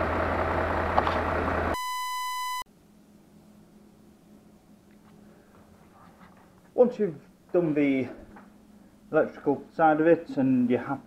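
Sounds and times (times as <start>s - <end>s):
high electronic beep: 1.8s - 2.7s.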